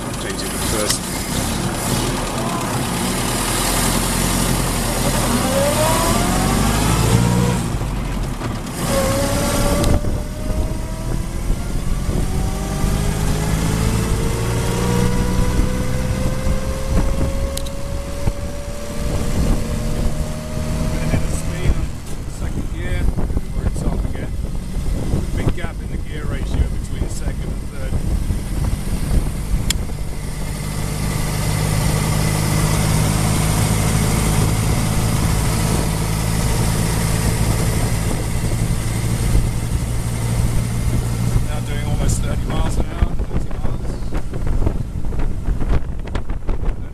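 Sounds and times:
car engine pulling away: 0:00.0 - 0:46.9.

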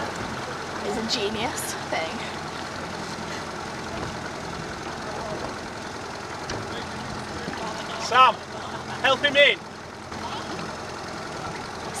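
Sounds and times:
motorboat engine running: 0:00.0 - 0:12.0.

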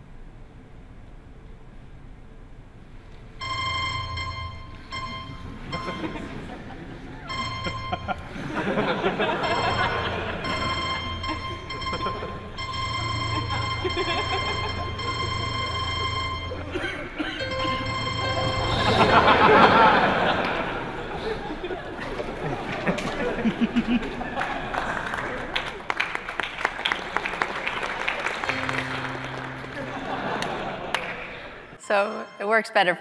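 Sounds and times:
held synthesized chords: 0:03.4 - 0:22.0, 0:28.5 - 0:32.9
audience laughter: 0:05.4 - 0:31.8.

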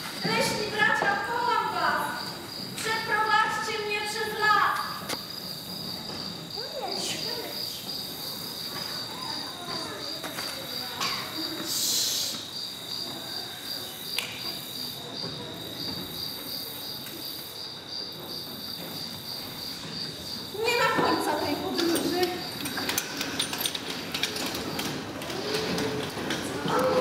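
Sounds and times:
recorded crickets chirping: 0:00.0 - 0:27.0
short hiss: 0:11.7 - 0:12.5.

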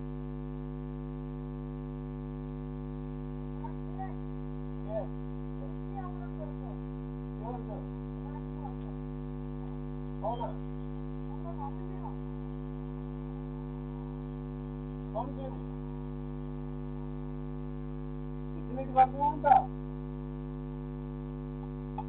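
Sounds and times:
electrical mains hum: 0:00.0 - 0:22.0.

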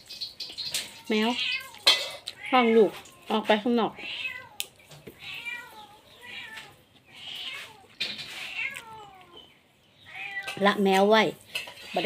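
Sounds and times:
cat meowing: 0:00.7 - 0:10.6.

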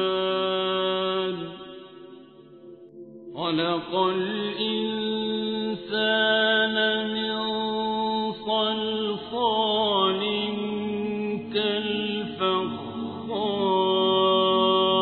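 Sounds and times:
person chanting melodically: 0:00.0 - 0:02.6, 0:03.3 - 0:15.0.

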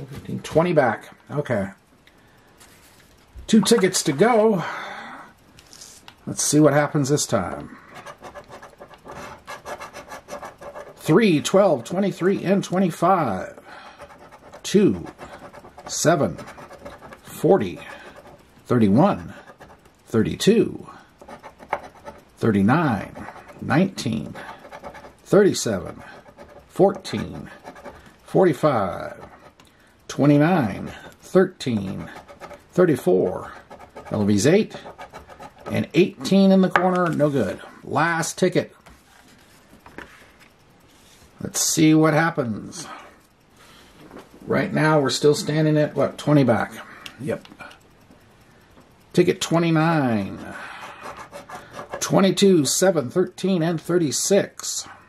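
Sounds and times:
man talking: 0:00.0 - 0:01.8, 0:03.5 - 0:04.8, 0:06.2 - 0:07.8, 0:11.0 - 0:13.6, 0:14.6 - 0:15.2, 0:15.9 - 0:16.5, 0:17.3 - 0:17.9, 0:22.4 - 0:24.5, 0:25.3 - 0:26.0, 0:26.7 - 0:27.6, 0:28.3 - 0:29.3, 0:30.1 - 0:32.2, 0:32.8 - 0:34.8, 0:35.7 - 0:38.8, 0:41.4 - 0:43.0, 0:44.4 - 0:47.8, 0:49.2 - 0:50.6, 0:52.0 - 0:55.0
coin scraping lottery ticket: 0:07.8 - 0:13.4, 0:14.0 - 0:19.8, 0:21.2 - 0:29.6, 0:30.8 - 0:36.6.

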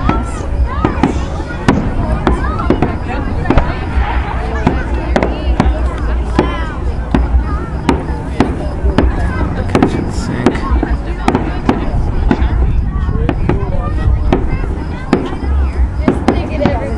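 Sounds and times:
fireworks bangs: 0:00.0 - 0:16.9
people's voices: 0:00.0 - 0:16.9.

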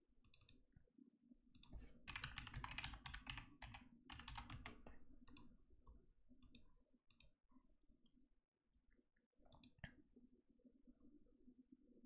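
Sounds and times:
computer mouse clicks: 0:00.2 - 0:00.6, 0:01.6 - 0:05.5, 0:06.4 - 0:08.1, 0:09.4 - 0:09.9.

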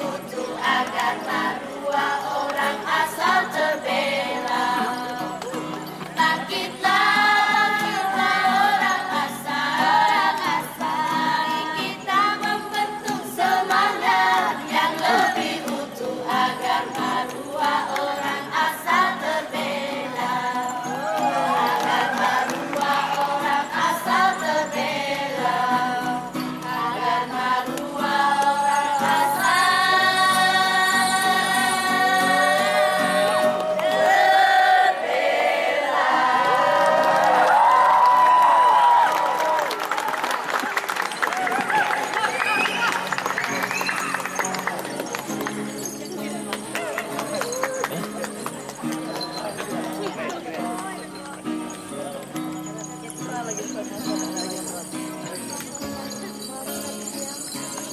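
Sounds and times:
group singing choir-style: 0:00.0 - 0:38.0.

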